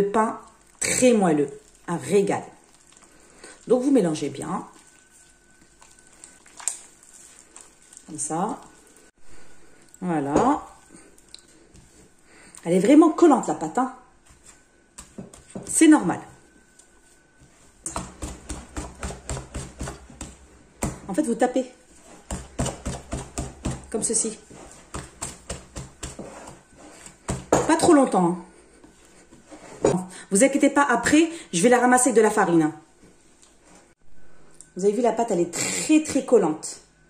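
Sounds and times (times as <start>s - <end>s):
hand kneading sticky dough: 0.2s - 13.5s, 14.2s - 30.0s.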